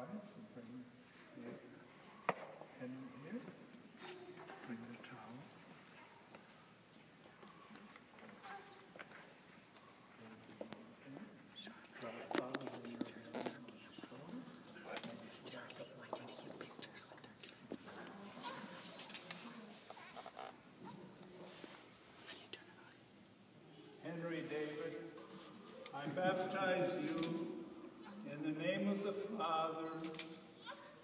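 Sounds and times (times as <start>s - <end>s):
faint whispering: 7.0s - 8.4s, 9.4s - 20.3s, 21.3s - 23.1s.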